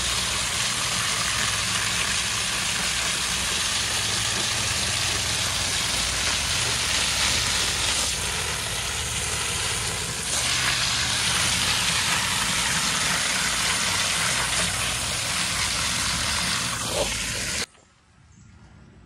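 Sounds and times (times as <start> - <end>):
hose spraying water on filter: 0.0 - 17.7.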